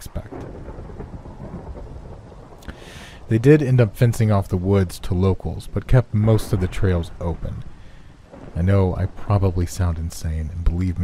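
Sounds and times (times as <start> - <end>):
low rumble of thunder: 0.0 - 11.0
rain hissing: 0.0 - 11.0.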